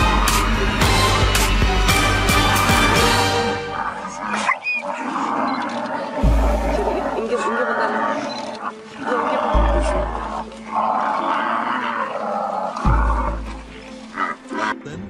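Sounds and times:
lion growling and roaring: 0:00.0 - 0:14.8
dramatic background music: 0:00.0 - 0:15.0.

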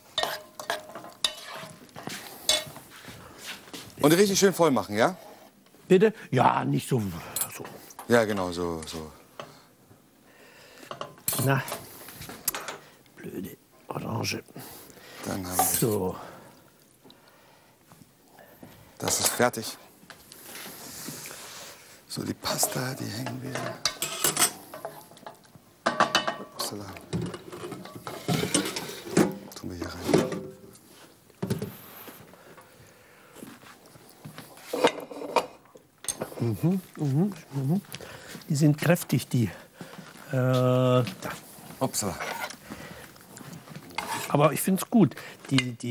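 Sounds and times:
metal utensils clinking on plates: 0:00.1 - 0:02.8, 0:07.3 - 0:09.6, 0:10.8 - 0:12.8, 0:15.5 - 0:16.0, 0:22.5 - 0:30.6.

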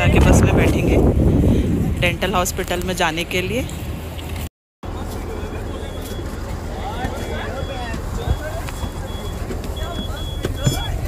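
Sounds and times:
bus engine idling: 0:04.8 - 0:11.0.

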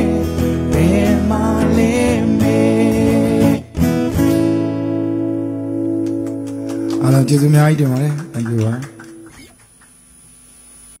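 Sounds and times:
singing with acoustic guitar: 0:00.0 - 0:07.4
faint electrical mains hum: 0:05.0 - 0:11.0.

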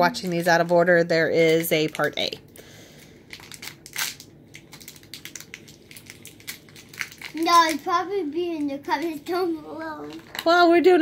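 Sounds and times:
plastic wrapper crinkling: 0:00.2 - 0:10.6.

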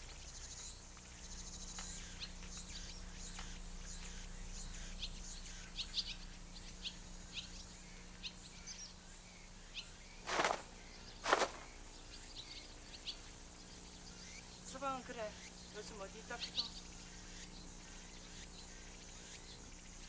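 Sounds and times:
faint high insect hiss: 0:00.0 - 0:20.0
outdoor background noise: 0:00.0 - 0:20.0
small birds chirping: 0:00.0 - 0:20.0.

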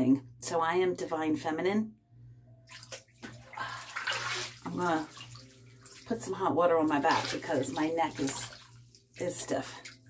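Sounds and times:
water sloshing in bathtub: 0:02.6 - 0:10.0.

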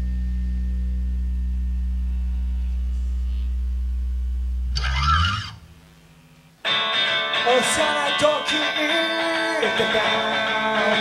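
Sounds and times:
low bass note droning: 0:00.0 - 0:06.6
electric guitar strumming: 0:04.4 - 0:11.0.

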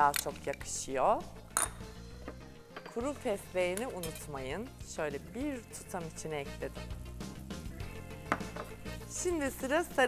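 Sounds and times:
soft background music: 0:00.0 - 0:10.0
spoon clinking steel bowl: 0:01.6 - 0:01.9, 0:03.6 - 0:04.5.

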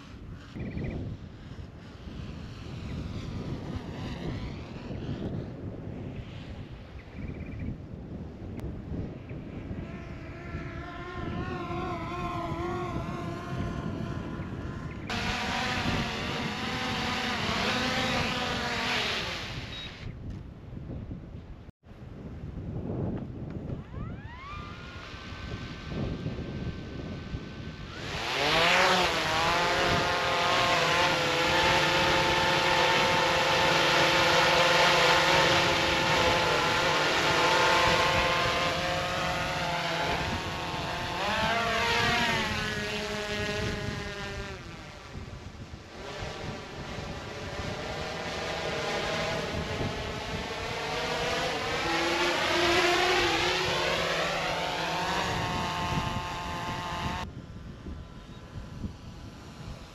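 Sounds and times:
drone propellers buzzing hum: 0:00.0 - 0:59.9.

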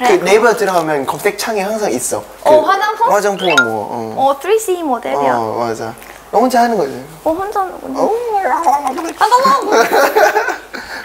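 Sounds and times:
laughter: 0:09.4 - 0:11.0.

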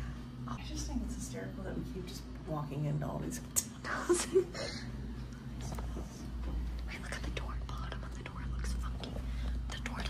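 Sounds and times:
steady low hum: 0:00.0 - 0:10.0
hushed whispering: 0:06.8 - 0:10.0.

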